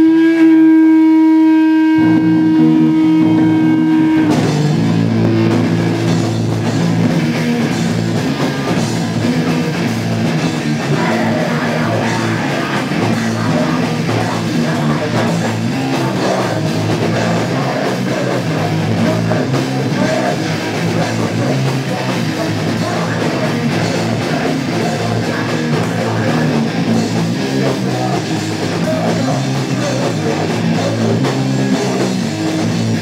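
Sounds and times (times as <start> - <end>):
electric guitar: 0.0 - 33.0
drum kit: 2.0 - 33.0.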